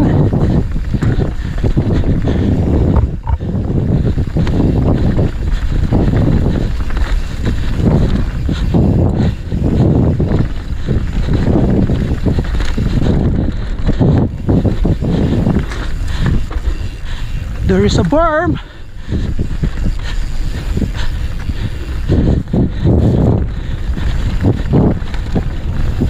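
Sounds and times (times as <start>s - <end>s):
wind buffeting microphone: 0.0s - 26.0s.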